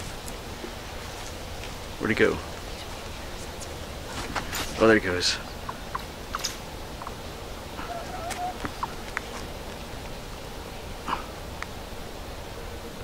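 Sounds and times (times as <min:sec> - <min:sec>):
steady low hiss: 0:00.0 - 0:13.0.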